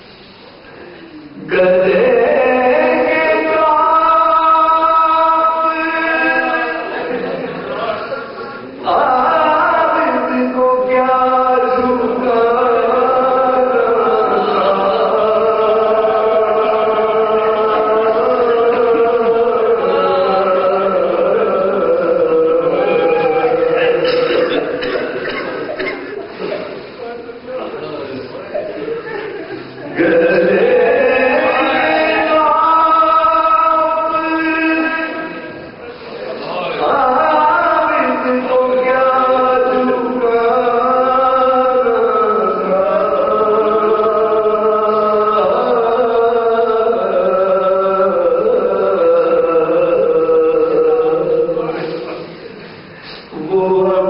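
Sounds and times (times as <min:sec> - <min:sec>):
man singing long drawn-out notes: 0:01.3 - 0:07.4, 0:08.8 - 0:24.8, 0:29.8 - 0:35.8, 0:36.6 - 0:52.4, 0:53.3 - 0:54.0.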